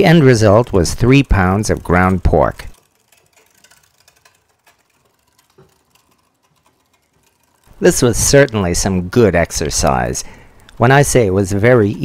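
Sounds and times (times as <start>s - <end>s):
meat grinder clicking and grinding: 0.0s - 10.9s.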